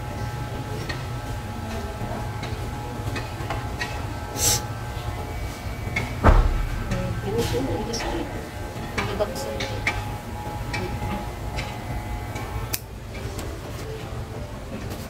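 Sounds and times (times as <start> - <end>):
electric hair clippers buzzing: 0.0 - 13.0
sharp knock: 6.2 - 8.5.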